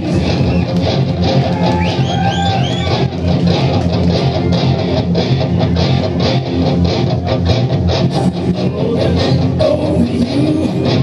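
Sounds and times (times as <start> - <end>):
bass guitar: 0.0 - 11.0
strummed electric guitars: 0.0 - 11.0.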